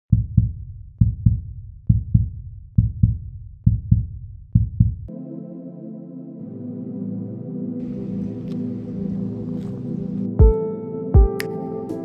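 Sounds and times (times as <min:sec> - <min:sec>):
heartbeat-like double thump music: 0:00.1 - 0:05.1, 0:10.4 - 0:10.6, 0:11.2 - 0:11.4.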